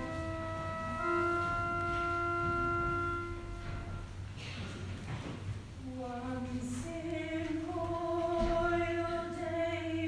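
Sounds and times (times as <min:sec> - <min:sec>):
pipe organ chord: 0:00.0 - 0:04.3.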